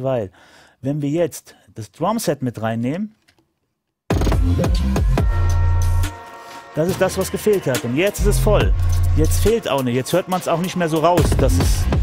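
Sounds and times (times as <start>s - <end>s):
hip-hop beat: 4.1s - 12.0s.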